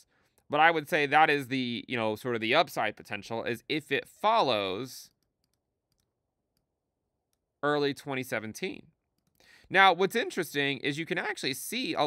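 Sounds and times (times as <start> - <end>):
computer mouse clicks: 5.1 - 6.7, 9.0 - 9.5.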